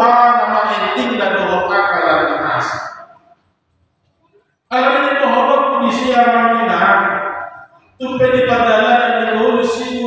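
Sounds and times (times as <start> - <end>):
man's voice: 0.0 - 3.0, 4.7 - 10.0.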